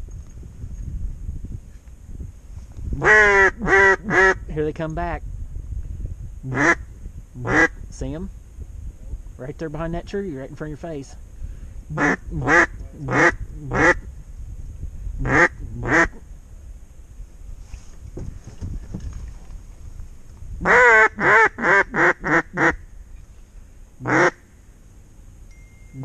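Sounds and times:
duck call quacks: 3.0s - 4.4s, 6.5s - 6.8s, 7.4s - 7.7s, 11.9s - 14.0s, 15.2s - 16.2s, 20.6s - 22.8s, 24.0s - 24.4s.

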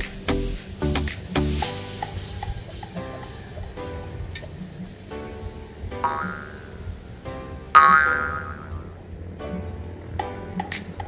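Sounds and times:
plucked ringing notes: 6.0s - 6.8s, 7.7s - 8.9s.

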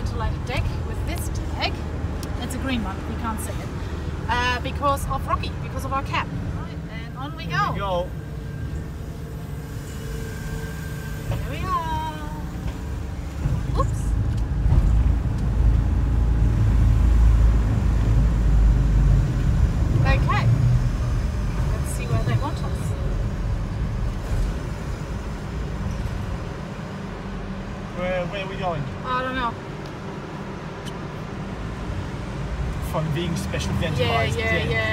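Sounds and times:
vehicle driving rumble: 0.0s - 34.9s.

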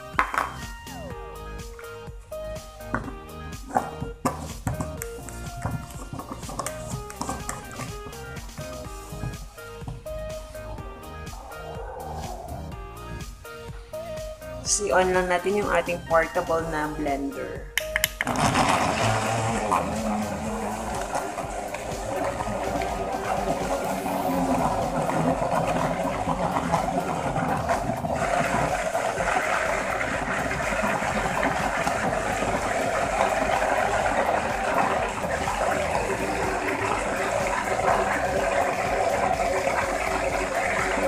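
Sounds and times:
small blender motor running: 18.2s - 41.0s.

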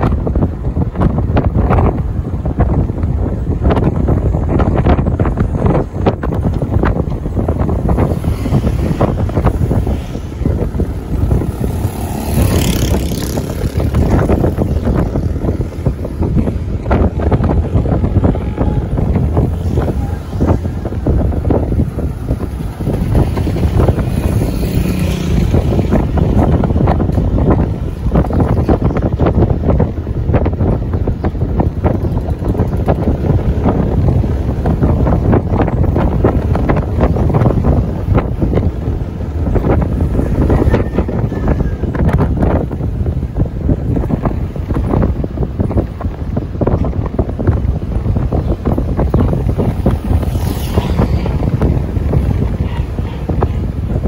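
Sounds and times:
vehicle road noise: 0.0s - 54.0s
wind buffeting microphone: 0.0s - 54.0s.

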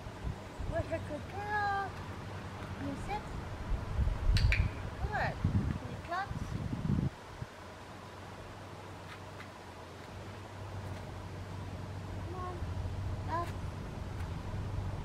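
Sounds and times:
low steady rumble: 0.0s - 15.0s.

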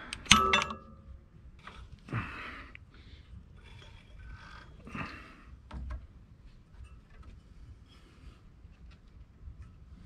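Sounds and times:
hands handling metal parts: 0.0s - 2.0s.

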